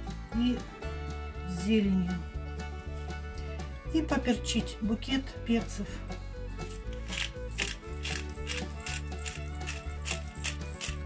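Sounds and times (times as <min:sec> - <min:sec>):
background music: 0:00.0 - 0:11.0
pepper grinder ratcheting crunch: 0:06.6 - 0:11.0.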